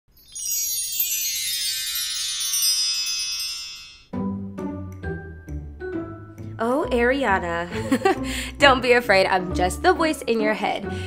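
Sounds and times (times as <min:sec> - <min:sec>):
shimmering bell-like chime: 0:00.1 - 0:04.1.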